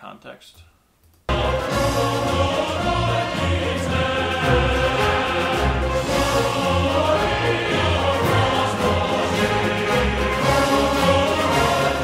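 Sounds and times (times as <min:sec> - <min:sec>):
men's choir singing held notes: 0:01.3 - 0:12.0.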